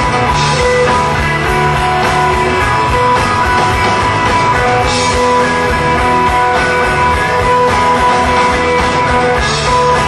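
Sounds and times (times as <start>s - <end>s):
rock band playing live: 0.0s - 10.0s.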